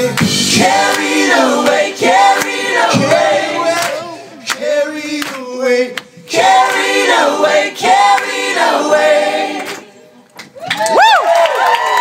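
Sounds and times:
group singing in harmony: 0.0s - 10.1s
whoops and cheers: 10.5s - 12.0s.

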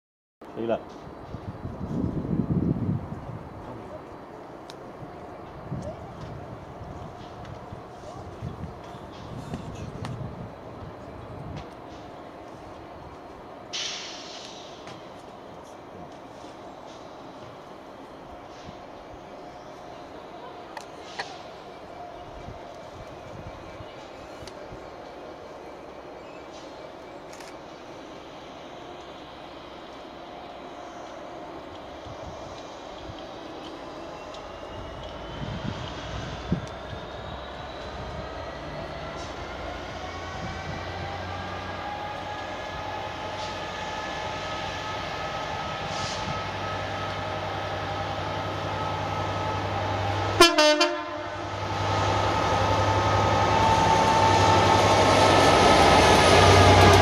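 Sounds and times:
diesel locomotive engine drone: 0.4s - 57.0s
locomotive whine rising in pitch: 33.6s - 57.0s.

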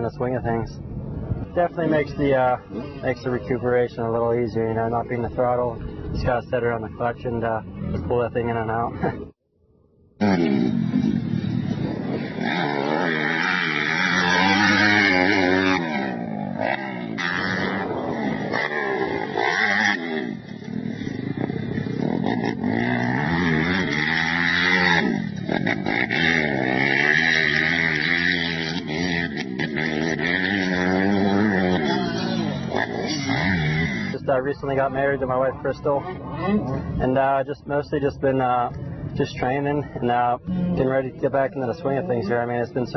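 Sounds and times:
motocross bike engine revving: 10.2s - 35.6s.

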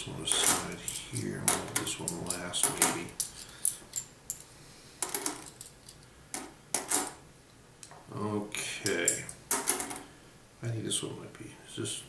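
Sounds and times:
coins clinking: 0.2s - 7.2s, 8.8s - 10.0s.

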